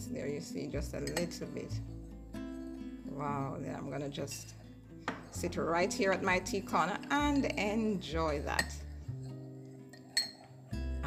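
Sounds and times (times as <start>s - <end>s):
acoustic guitar music: 0.0s - 11.0s
spoon clinking on teacup: 1.0s - 1.6s, 8.5s - 10.6s.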